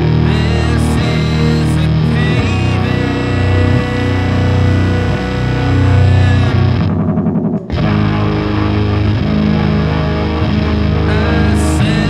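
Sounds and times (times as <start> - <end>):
bass guitar: 0.0 - 12.0
distorted electric guitar chords: 0.0 - 12.0.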